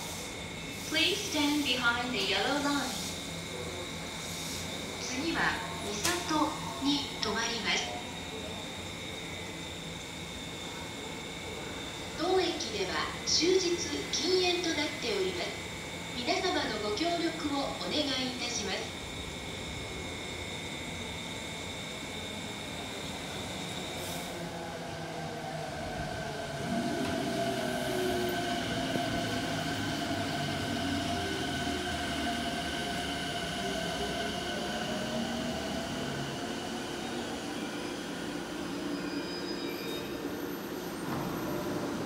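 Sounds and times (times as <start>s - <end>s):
electric motors whining: 18.2s - 39.5s.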